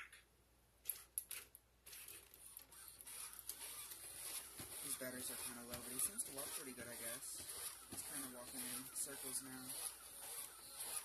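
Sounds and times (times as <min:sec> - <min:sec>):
robot motors whirring: 0:01.9 - 0:11.0.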